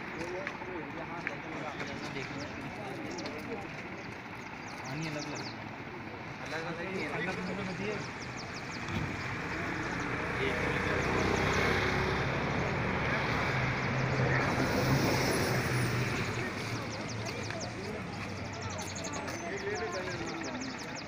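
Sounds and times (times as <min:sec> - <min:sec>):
indistinct voices: 0:00.0 - 0:21.0
vehicle engine hum: 0:00.0 - 0:21.0
dense rushing noise: 0:08.7 - 0:17.2.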